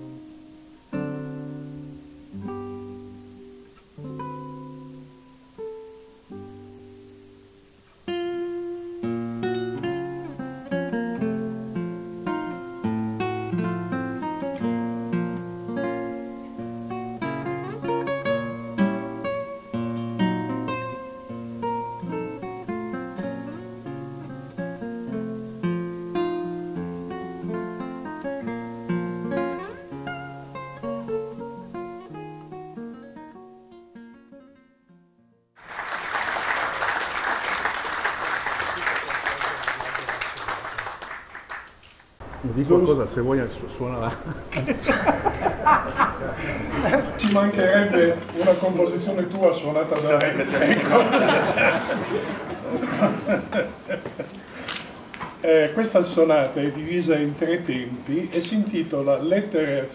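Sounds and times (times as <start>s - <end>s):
classical guitar fingerstyle: 0.0s - 35.4s
audience applause: 35.6s - 47.6s, 50.6s - 54.7s.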